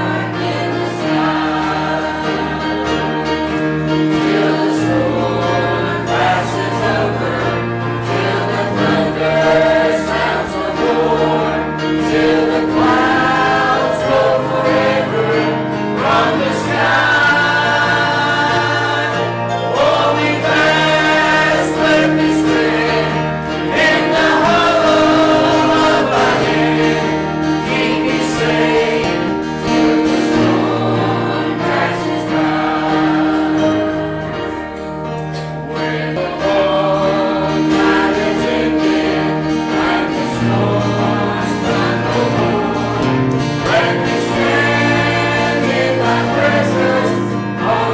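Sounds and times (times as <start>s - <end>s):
bass guitar: 0.0s - 47.9s
choir singing a hymn: 0.0s - 47.9s
piano: 0.0s - 47.9s.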